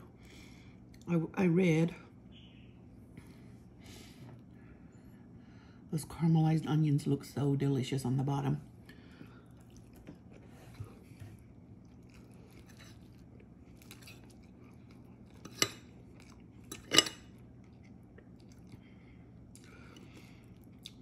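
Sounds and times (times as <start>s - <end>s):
faint chewing: 8.8s - 21.0s
metal fork clinking on ceramic plate: 16.7s - 17.3s.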